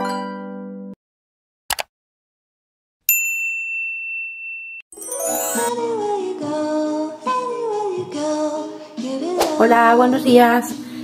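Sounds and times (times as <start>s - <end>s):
electronic ding chime: 3.1s - 5.8s.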